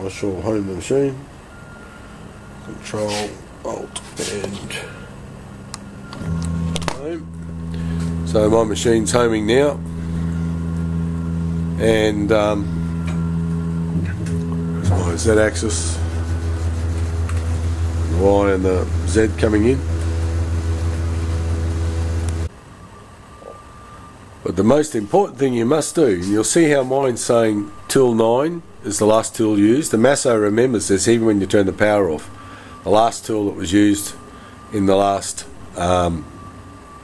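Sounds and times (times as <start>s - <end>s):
motor hum: 4.6s - 22.5s.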